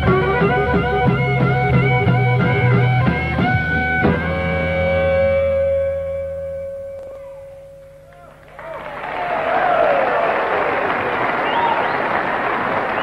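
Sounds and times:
electric guitar chord: 0:00.0 - 0:08.5
audience applause: 0:08.2 - 0:13.0
whoops and whistles: 0:11.4 - 0:12.2.

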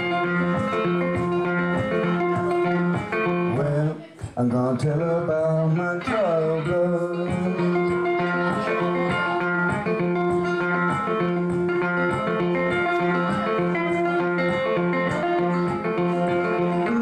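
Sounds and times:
solo guitar playing: 0:00.0 - 0:17.0.

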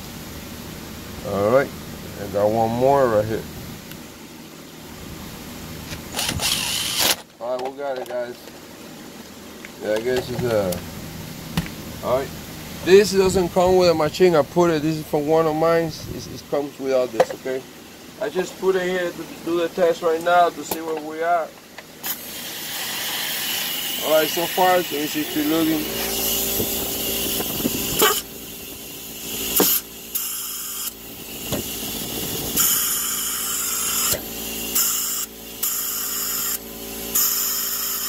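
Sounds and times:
steady background hiss: 0:00.0 - 0:31.6
compressed air hissing with whistle: 0:22.0 - 0:38.0.

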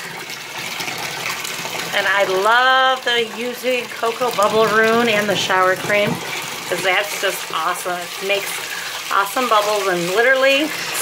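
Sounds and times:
tap running into bathtub: 0:00.0 - 0:11.0.

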